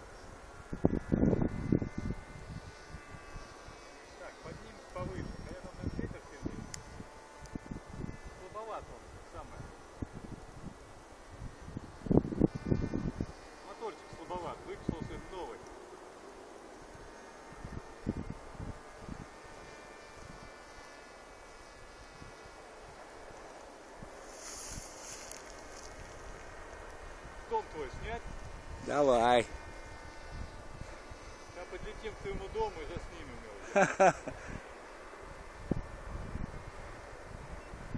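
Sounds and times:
wind rumbling on microphone: 0:00.0 - 0:03.8, 0:04.5 - 0:13.5, 0:14.1 - 0:15.6, 0:16.9 - 0:20.6, 0:22.0 - 0:33.5, 0:34.2 - 0:37.9
model aircraft motor whine: 0:00.0 - 0:37.9.

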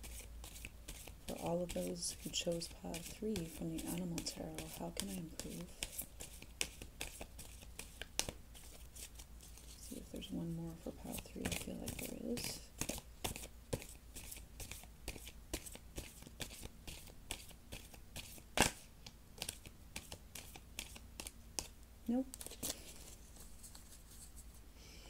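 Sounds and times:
cards being shuffled: 0:00.0 - 0:10.3, 0:11.0 - 0:24.5.

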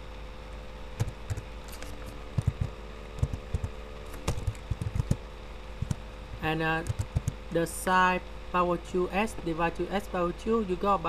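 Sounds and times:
steady low hum: 0:00.0 - 0:11.0
computer keyboard keys clicking: 0:01.0 - 0:05.2, 0:06.8 - 0:07.4.

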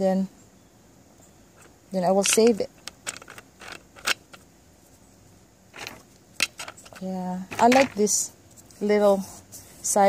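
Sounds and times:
rocks rustling scrape: 0:05.7 - 0:08.8.

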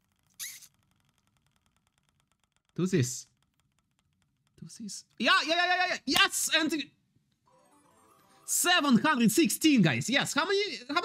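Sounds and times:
short squeak: 0:00.0 - 0:01.0
prize wheel ticking: 0:00.0 - 0:05.8.

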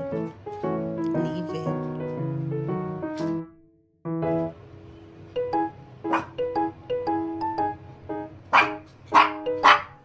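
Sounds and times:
piano music: 0:00.0 - 0:10.0
puppy barking: 0:06.1 - 0:06.4, 0:08.5 - 0:10.0.

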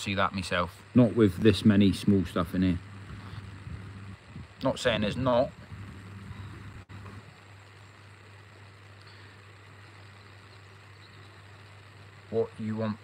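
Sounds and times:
faint low hum: 0:00.0 - 0:13.0
outdoor background hiss: 0:00.0 - 0:13.0.

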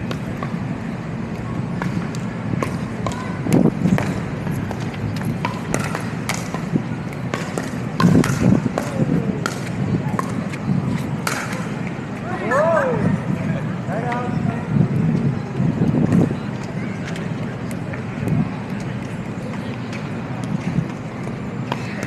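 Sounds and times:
city background noise: 0:00.0 - 0:22.0
ball bouncing on asphalt: 0:01.3 - 0:12.0
paddles popping against ball: 0:01.8 - 0:10.4.

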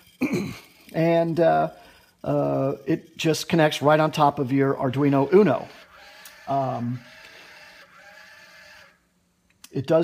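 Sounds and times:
small motors whining: 0:00.0 - 0:09.2
steady low hum: 0:00.0 - 0:10.0.

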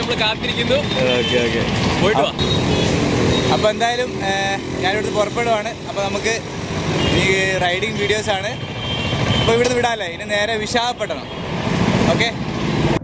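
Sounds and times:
men talking: 0:00.0 - 0:02.5, 0:03.4 - 0:08.7, 0:09.4 - 0:11.4, 0:12.0 - 0:12.4
road traffic: 0:00.0 - 0:13.0.

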